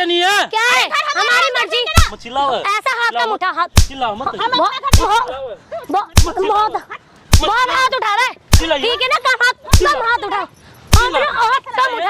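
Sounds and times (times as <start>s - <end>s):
sharp slaps: 3.8s - 4.1s, 4.9s - 5.2s, 6.2s - 6.5s, 7.3s - 7.6s, 8.5s - 8.8s, 9.7s - 10.0s, 10.9s - 11.2s.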